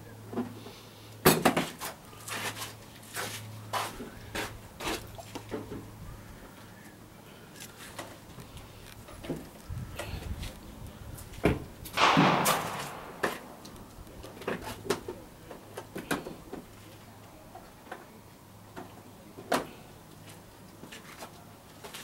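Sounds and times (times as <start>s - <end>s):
hammer falling click: 12.0s - 13.9s
pistol shot: 12.0s - 14.0s.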